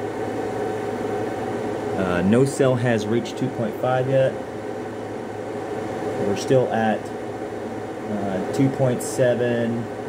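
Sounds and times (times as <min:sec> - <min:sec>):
inverter and heater whir and hum: 0:00.0 - 0:10.0.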